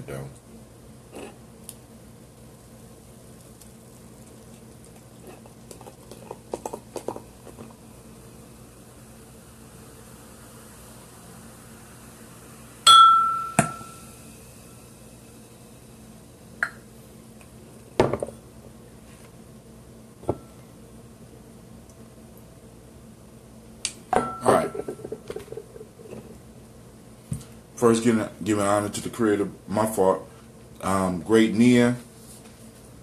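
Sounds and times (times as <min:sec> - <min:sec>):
glass bottle clinking glass: 0:12.9 - 0:14.0, 0:24.2 - 0:24.8.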